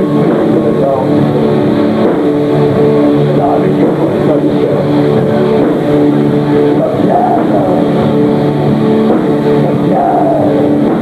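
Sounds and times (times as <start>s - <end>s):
distorted electric guitars: 0.0s - 11.0s
drums: 0.0s - 11.0s.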